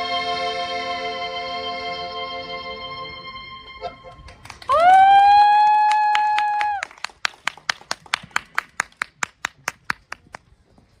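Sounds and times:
people clapping in beat: 0:04.2 - 0:10.4.

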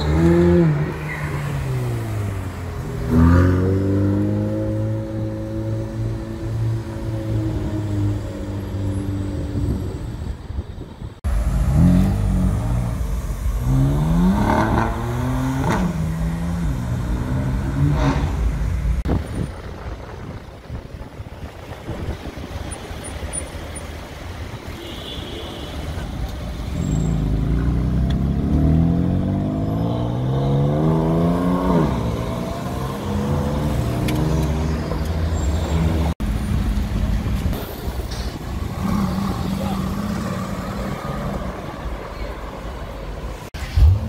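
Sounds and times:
city traffic: 0:00.0 - 0:44.0.

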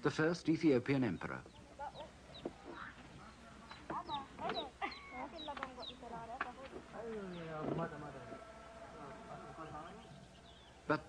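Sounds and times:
unintelligible voices: 0:01.6 - 0:11.0.

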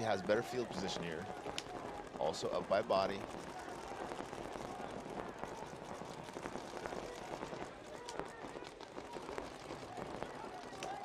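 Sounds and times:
paintball markers firing: 0:01.2 - 0:11.0.

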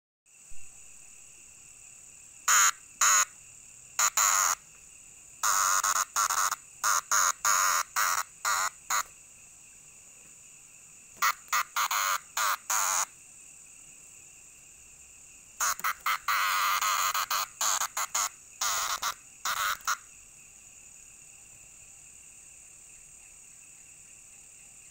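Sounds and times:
cicada harsh buzzes: 0:00.3 - 0:24.2
high-pitched insect chorus: 0:00.3 - 0:24.9.

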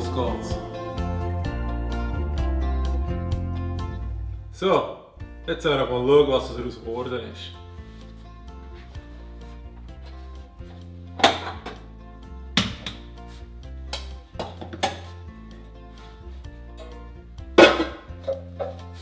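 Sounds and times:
soft background music: 0:00.0 - 0:19.0
metal baking pan clattering: 0:17.6 - 0:18.8.

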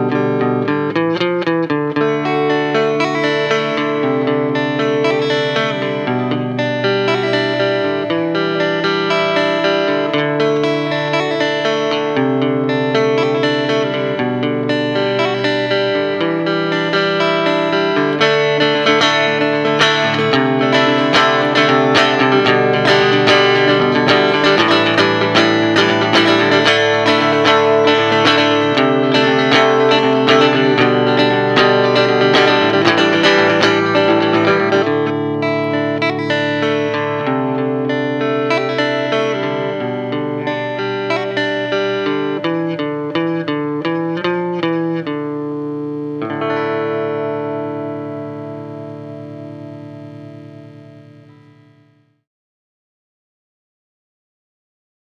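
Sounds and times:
electric and acoustic guitars: 0:00.0 - 0:52.0.

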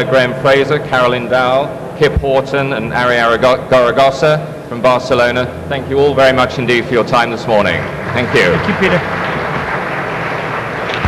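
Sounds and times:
audience applauding: 0:07.6 - 0:11.0.

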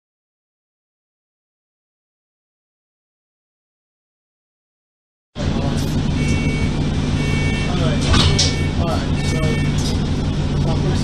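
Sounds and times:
bus engine humming: 0:05.4 - 0:11.0
two-tone beep: 0:06.2 - 0:09.9.

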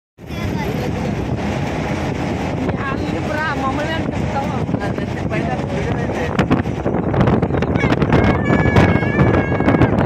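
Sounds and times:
moving truck road and engine noise: 0:00.2 - 0:10.0
wind buffeting microphone: 0:00.2 - 0:10.0.

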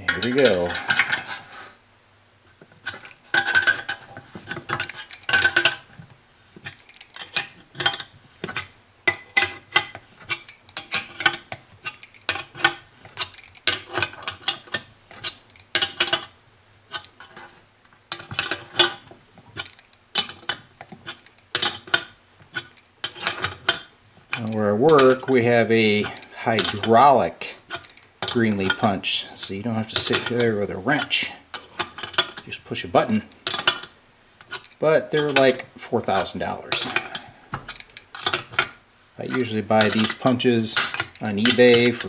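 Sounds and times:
wrench clinking on metal nut: 0:39.3 - 0:42.0.

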